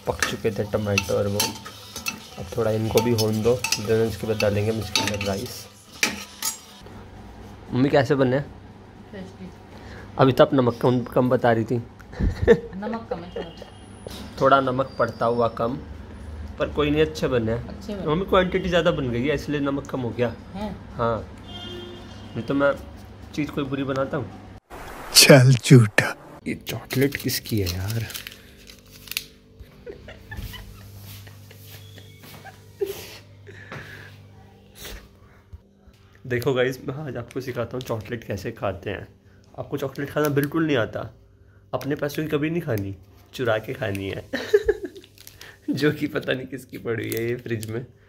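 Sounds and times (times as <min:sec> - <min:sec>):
metal ladle clinking on pot rim: 0:00.2 - 0:06.7
low electrical hum: 0:25.2 - 0:48.0.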